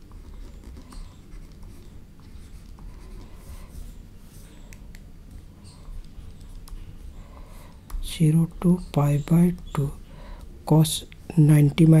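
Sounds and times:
steady low hum: 0.0 - 12.0
stylus scratching on pen tablet: 0.1 - 4.6.

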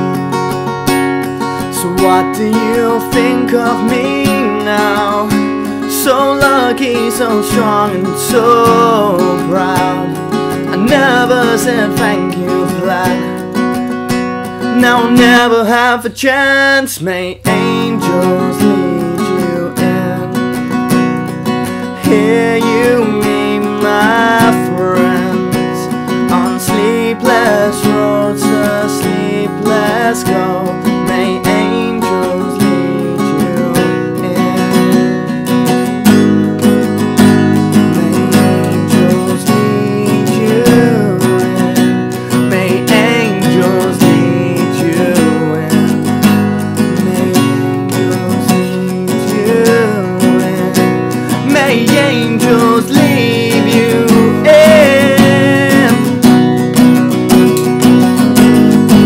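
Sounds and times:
acoustic guitar strumming: 0.0 - 59.0.

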